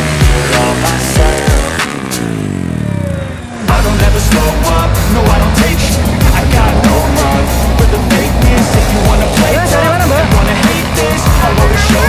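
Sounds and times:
music with beat and vocals: 0.0s - 2.4s, 3.6s - 12.0s.

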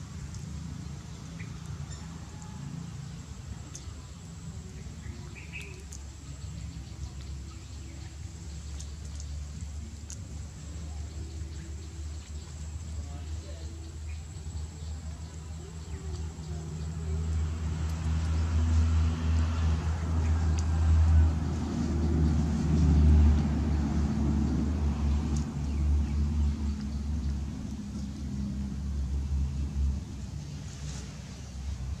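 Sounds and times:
motor vehicle engine rumble: 0.0s - 32.0s.

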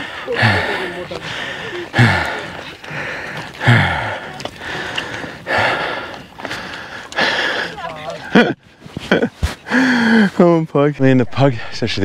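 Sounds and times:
man breathing heavily: 0.0s - 7.9s, 9.6s - 10.4s.

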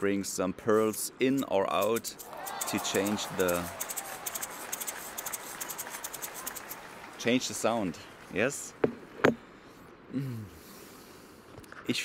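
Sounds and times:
hand shaker rattling: 0.8s - 6.9s.

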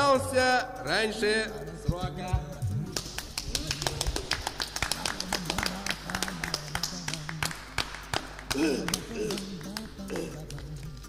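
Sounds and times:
clattering percussion: 0.0s - 11.0s.

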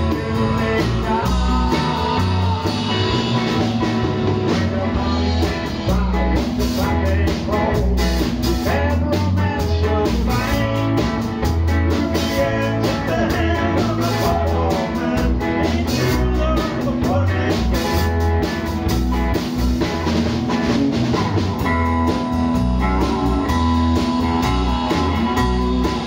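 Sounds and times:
bass guitar: 0.0s - 26.0s
drum kit with cymbals: 0.0s - 26.0s
electric guitar: 0.0s - 26.0s.

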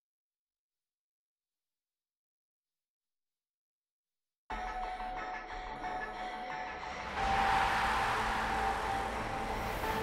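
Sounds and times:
rushing noise swell: 7.0s - 10.0s.

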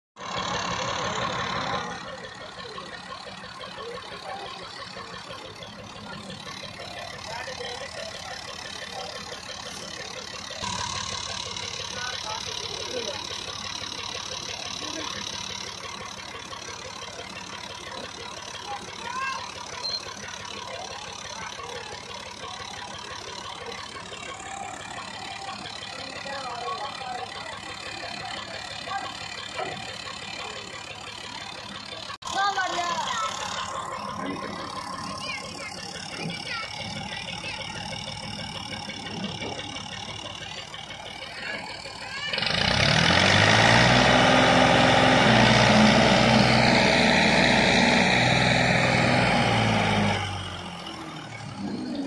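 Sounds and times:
tractor diesel engine idling: 0.2s - 52.0s.

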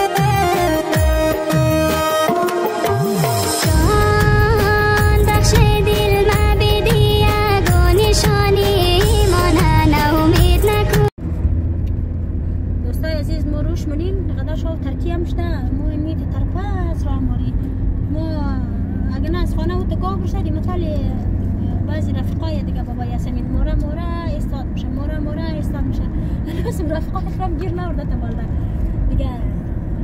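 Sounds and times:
car interior engine and road drone: 3.2s - 30.0s.

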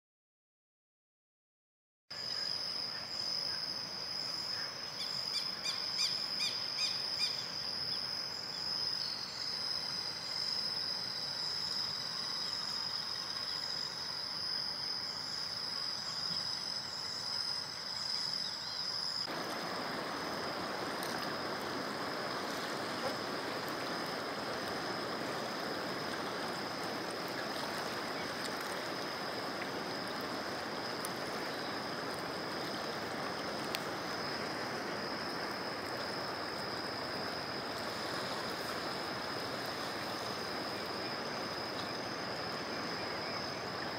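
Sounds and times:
insects trilling: 2.1s - 43.9s
rushing river water: 19.2s - 43.9s.

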